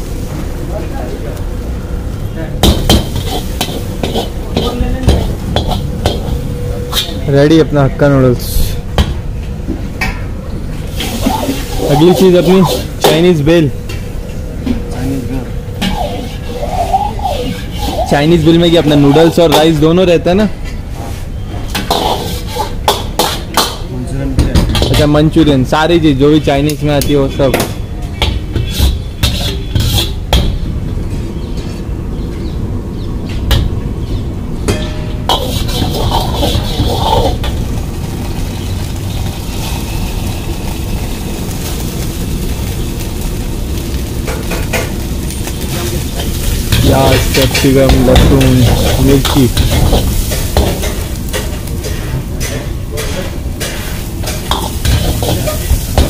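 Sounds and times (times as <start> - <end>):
noodles sizzling: 0.0 - 7.2, 10.6 - 14.3, 14.9 - 20.2, 21.7 - 23.8, 35.2 - 56.0
steel ladle scraping a wok: 3.0 - 4.8, 10.8 - 13.0, 15.8 - 18.1, 21.0 - 23.4, 28.5 - 30.2, 35.2 - 37.6, 45.8 - 56.0.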